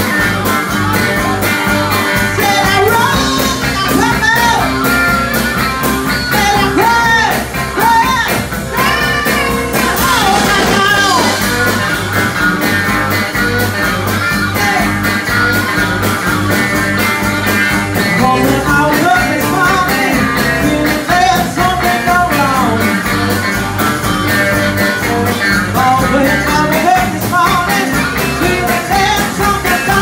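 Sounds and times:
woman singing: 0.0s - 4.7s, 6.2s - 11.8s, 18.1s - 22.9s, 25.8s - 30.0s
bass guitar: 0.0s - 30.0s
drums: 0.0s - 30.0s
electric guitar: 0.0s - 30.0s.

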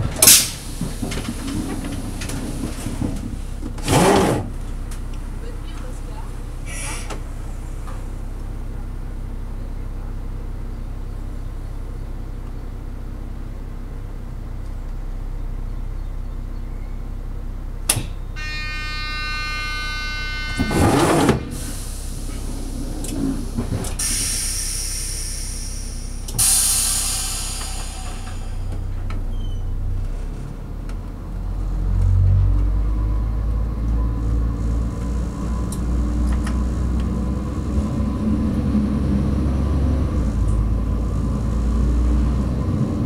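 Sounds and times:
diesel railcar idling: 0.0s - 43.0s
compressed air hissing: 6.6s - 7.2s, 21.5s - 28.8s
warning tone: 18.3s - 21.6s.

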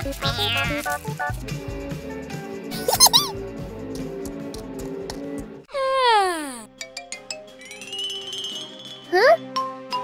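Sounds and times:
light background music: 1.1s - 5.7s
squeaky cartoon sound effects: 2.8s - 3.3s.

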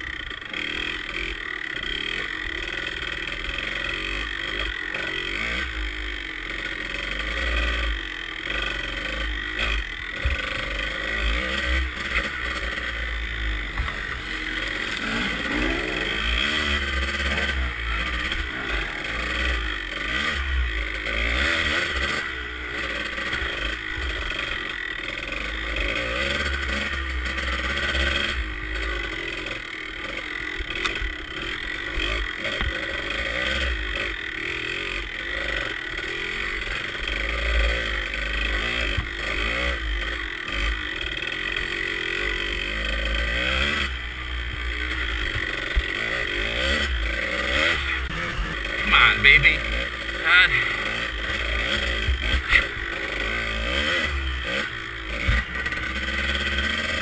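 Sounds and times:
two-stroke dirt bike engine revving: 0.0s - 57.0s.

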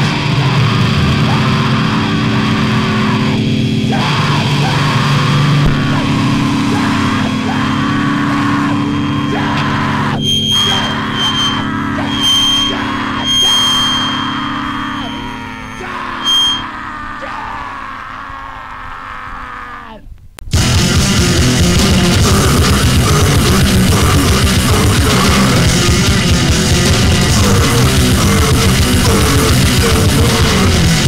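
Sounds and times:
distorted electric guitar ringing: 0.0s - 17.7s, 20.5s - 31.0s
hardcore punk song: 0.0s - 17.8s, 20.5s - 31.0s
high feedback squeals: 4.0s - 17.2s, 22.4s - 31.0s.

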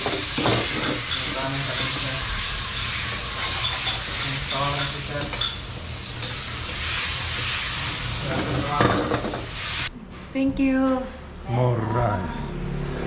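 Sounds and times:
metal tongs stirring food: 0.0s - 9.4s
food sizzling in a wok: 0.0s - 9.9s.

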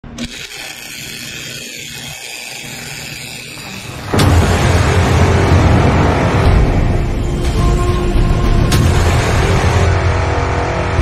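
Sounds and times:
welder arc crackling: 0.0s - 7.3s
bass-heavy intro music: 4.1s - 11.0s.

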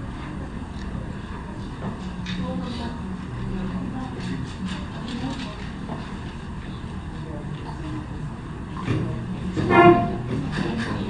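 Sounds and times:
muffled voices: 0.0s - 11.0s
steady background noise: 0.0s - 11.0s.

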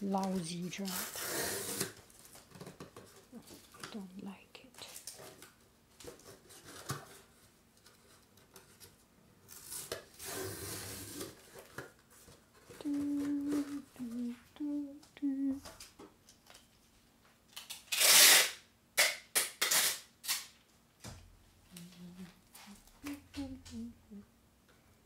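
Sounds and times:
person humming: 12.7s - 15.7s, 21.7s - 24.3s.

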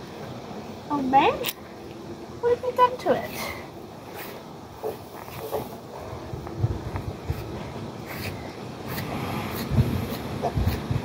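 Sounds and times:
crackling rustles: 3.4s - 11.0s
pony chewing hay: 4.1s - 11.0s.

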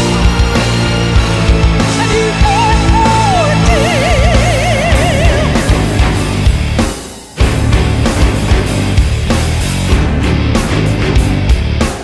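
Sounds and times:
heavy metal band playing: 0.0s - 12.0s.

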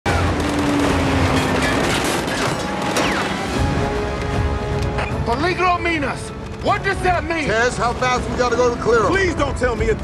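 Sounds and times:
dramatic music: 0.1s - 10.0s.

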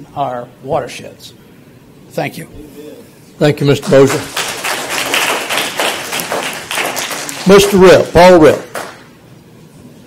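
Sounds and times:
audience applause: 3.9s - 9.1s.

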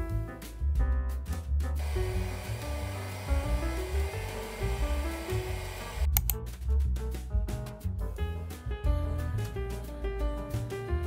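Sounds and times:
background music: 0.0s - 11.0s
electric mixer whisking: 1.8s - 6.1s.

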